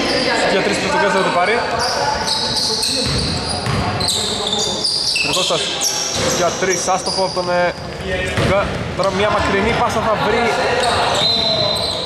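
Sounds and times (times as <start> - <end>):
basketball bouncing: 2.9 - 4.0, 7.8 - 9.6.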